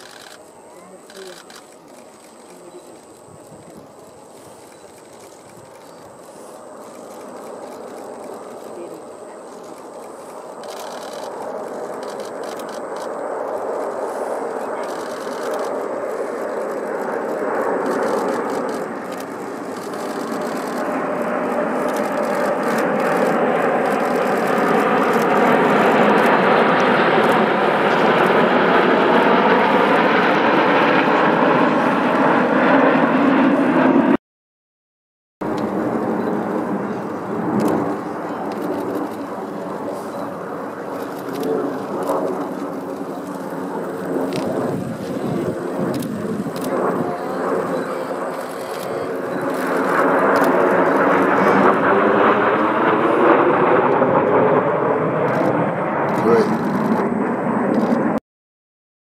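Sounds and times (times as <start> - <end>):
jet engines: 0.0 - 34.2, 35.4 - 58.2.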